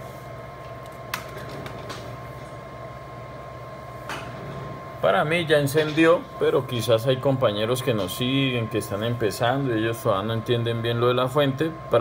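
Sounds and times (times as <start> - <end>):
electrical hum: 0.0 - 12.0
high-pitched whine: 6.4 - 12.0.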